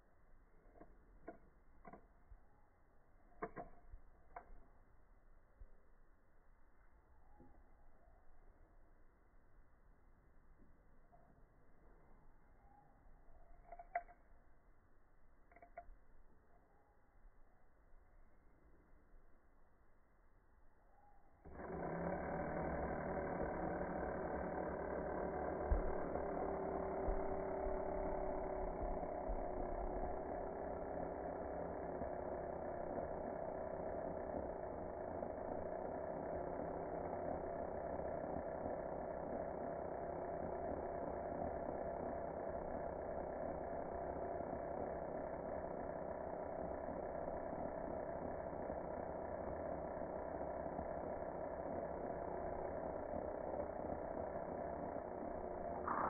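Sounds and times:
electric power tool motor: 0:00.6 - 0:02.5, 0:03.4 - 0:04.8, 0:21.4 - 0:56.0.

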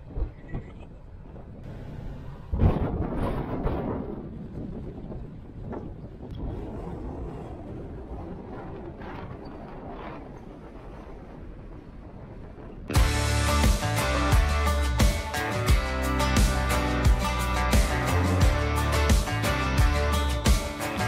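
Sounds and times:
car noise: 0:00.0 - 0:03.4
wind: 0:00.0 - 0:21.0.

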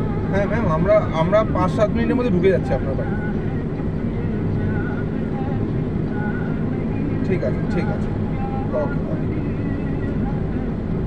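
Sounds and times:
road noise: 0:00.0 - 0:11.0
vehicle engine rumble: 0:00.0 - 0:11.0.

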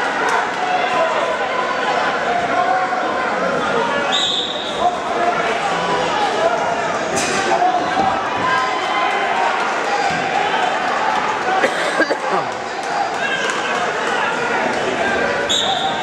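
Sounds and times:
crowd chatter: 0:00.0 - 0:16.0
referee's whistle: 0:04.1 - 0:04.8, 0:15.5 - 0:16.0.

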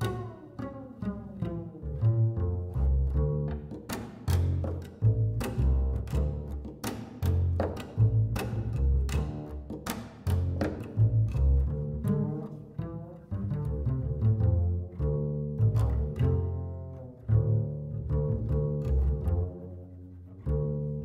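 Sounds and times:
plucked double bass: 0:00.0 - 0:21.0.

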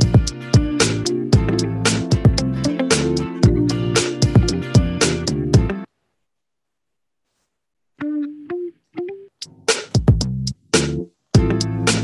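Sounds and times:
plucked guitar notes: 0:00.0 - 0:05.8, 0:08.0 - 0:09.3.

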